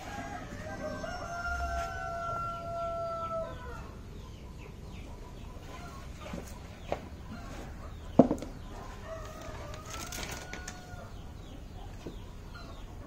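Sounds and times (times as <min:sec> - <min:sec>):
rooster crowing: 0:00.0 - 0:04.0, 0:08.8 - 0:11.2.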